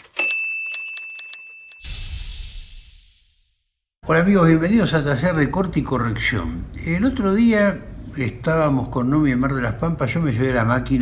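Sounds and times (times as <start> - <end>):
typewriter keys clacking: 0.0 - 1.8
typewriter bell ding: 0.0 - 1.9.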